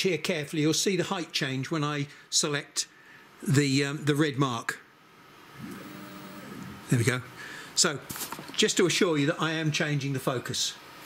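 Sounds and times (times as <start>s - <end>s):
motor humming: 5.5s - 7.0s.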